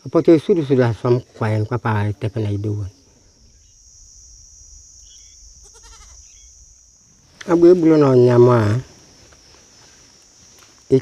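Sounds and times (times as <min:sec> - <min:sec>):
high-pitched insect drone: 0:00.0 - 0:11.0
farm animal bleat: 0:05.6 - 0:06.4.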